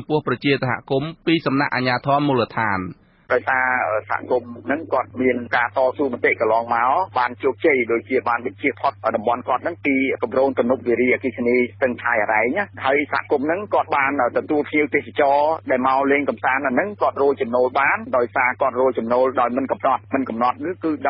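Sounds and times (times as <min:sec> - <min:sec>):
low hum: 0:00.0 - 0:21.0
radio news speech: 0:00.0 - 0:21.0.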